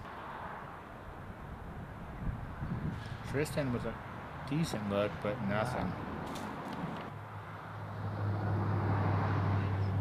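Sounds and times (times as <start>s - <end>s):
road rush: 0.0s - 10.0s
vehicle engine hum: 5.2s - 10.0s.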